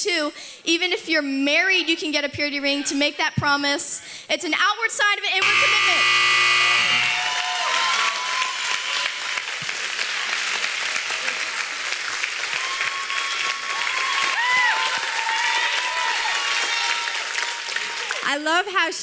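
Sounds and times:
countdown buzzer tone: 0:05.4 - 0:07.3
whooping cheers: 0:06.9 - 0:09.6, 0:12.4 - 0:18.2
audience applause: 0:06.9 - 0:18.3.

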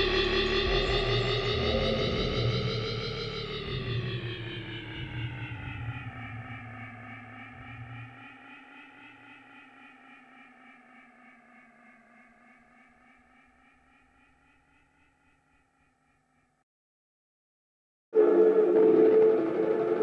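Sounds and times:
dub bass line: 0:00.0 - 0:07.9
echoing synthesizer tone: 0:00.0 - 0:15.6, 0:18.2 - 0:20.0.

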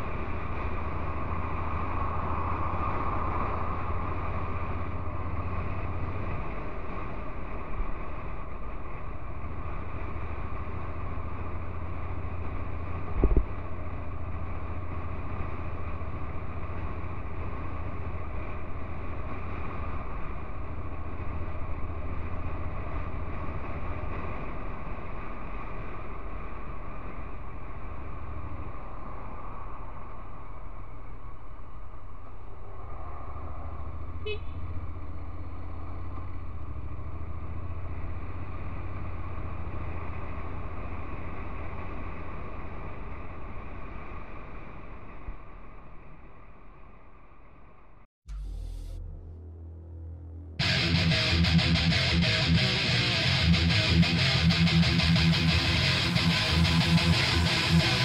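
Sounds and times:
motorcycle riding noise: 0:00.0 - 0:47.0, 0:50.5 - 0:58.0
wind rumble: 0:00.0 - 0:58.0.

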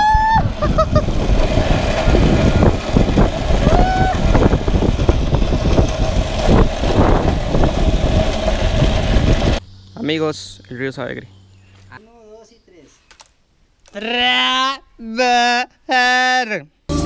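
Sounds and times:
cable car pulley whirring: 0:00.0 - 0:09.6
person shouting: 0:03.6 - 0:04.3, 0:14.0 - 0:16.5.

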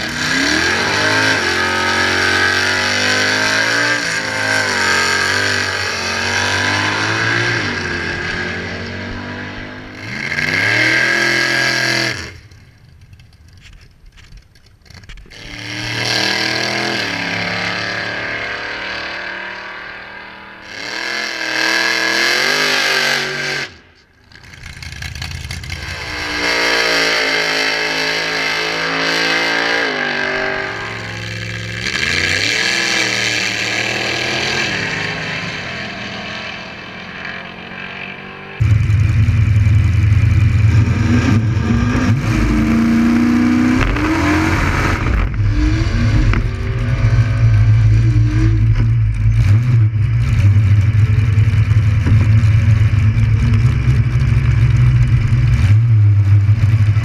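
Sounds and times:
drag car engine at full throttle: 0:00.0 - 0:57.0
big engine idling rough: 0:45.0 - 0:57.0.

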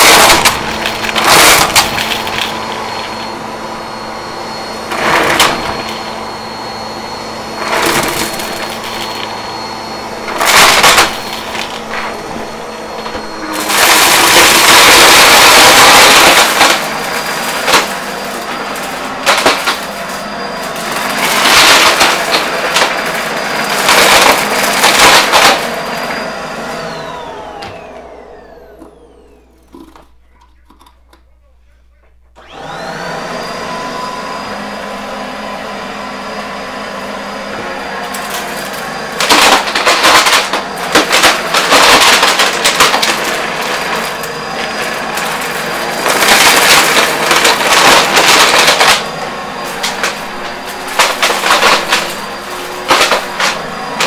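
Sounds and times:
pieces rattling in vacuum: 0:00.0 - 0:03.2, 0:07.6 - 0:09.3, 0:10.3 - 0:27.9, 0:38.1 - 0:54.0
vacuum cleaner motor whine: 0:00.0 - 0:31.2, 0:32.1 - 0:54.0.

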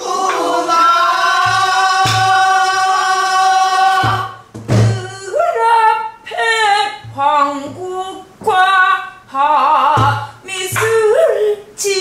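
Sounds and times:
low barrel drum strokes: 0:00.0 - 0:02.9
woman singing folk song: 0:04.0 - 0:12.0.

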